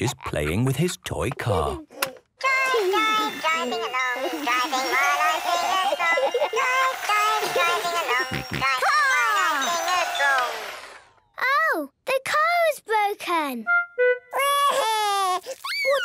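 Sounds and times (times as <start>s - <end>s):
toy car electronic tune: 2.4s - 11.0s
small child crying: 14.3s - 16.0s.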